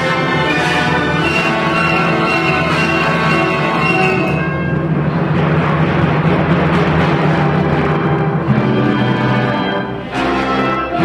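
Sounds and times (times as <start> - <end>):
symphony orchestra playing: 0.0 - 11.0.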